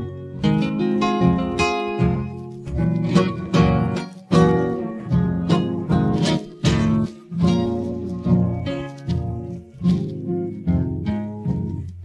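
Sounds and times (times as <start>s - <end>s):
bass line: 0.0s - 12.0s
strummed acoustic guitar: 0.0s - 12.0s.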